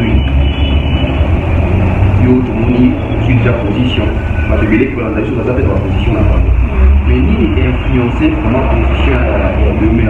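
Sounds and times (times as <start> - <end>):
man talking: 0.0 - 0.3, 2.2 - 10.0.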